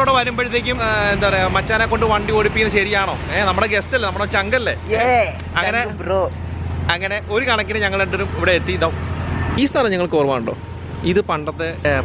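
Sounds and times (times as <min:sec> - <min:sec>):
voices talking: 0:00.0 - 0:09.0.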